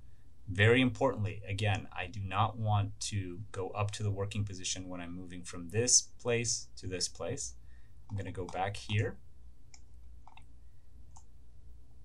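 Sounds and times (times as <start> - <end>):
low steady hum: 0.0 - 12.0
computer mouse clicks: 9.7 - 10.5, 11.1 - 11.4.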